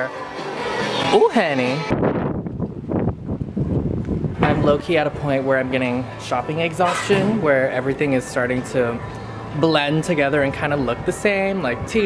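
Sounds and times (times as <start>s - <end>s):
wind buffeting microphone: 1.9s - 5.5s.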